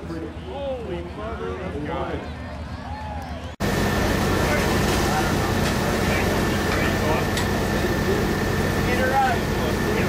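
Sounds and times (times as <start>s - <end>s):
race car engine idling: 3.6s - 10.0s.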